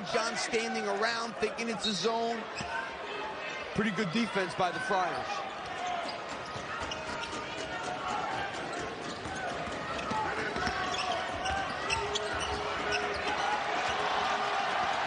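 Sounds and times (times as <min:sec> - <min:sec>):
arena crowd murmur: 0:00.0 - 0:15.0.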